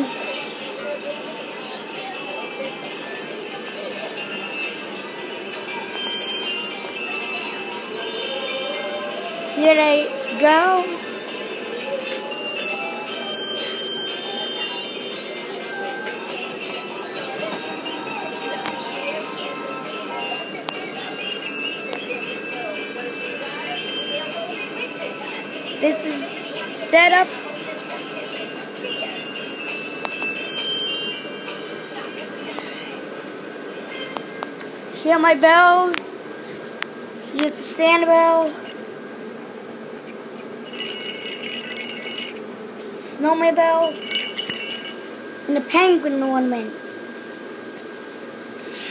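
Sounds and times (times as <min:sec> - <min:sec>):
small bell jingling: 0:40.7 - 0:42.4, 0:43.8 - 0:45.1.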